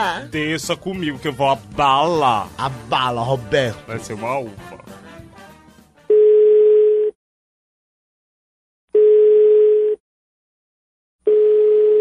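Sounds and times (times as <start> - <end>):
telephone ringback tone: 6.1 - 7.2, 9.0 - 10.0, 11.3 - 12.0.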